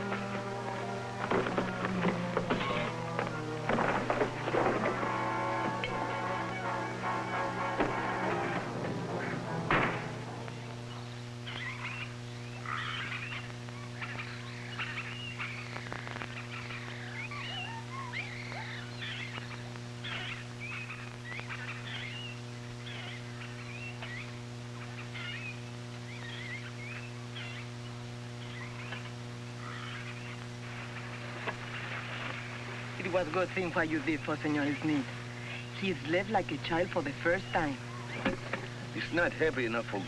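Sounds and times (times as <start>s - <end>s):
low electrical hum: 0.0s - 40.0s
frog-like chirping calls: 10.6s - 27.7s.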